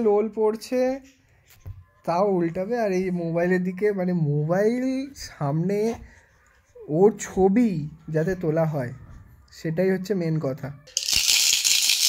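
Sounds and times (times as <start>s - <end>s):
baby rattle toy shaking: 11.0s - 12.0s.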